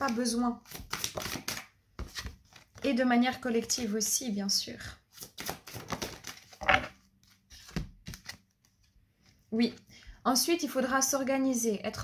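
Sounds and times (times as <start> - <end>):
cards being shuffled: 0.0 - 4.1, 5.1 - 9.4.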